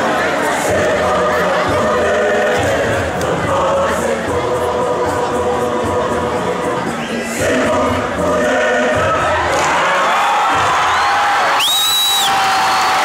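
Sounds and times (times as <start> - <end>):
large choir singing: 0.0 - 11.6
crowd cheering: 9.0 - 13.0
shrill whistle: 10.9 - 13.0.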